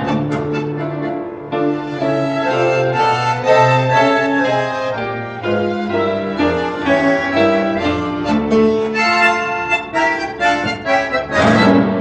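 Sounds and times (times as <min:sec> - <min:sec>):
bandoneon melody: 0:00.0 - 0:12.0
tango music over loudspeaker: 0:00.0 - 0:12.0.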